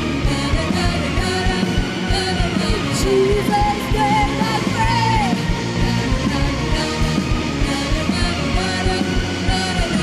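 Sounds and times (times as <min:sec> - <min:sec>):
live band playing upbeat song: 0:00.0 - 0:10.0.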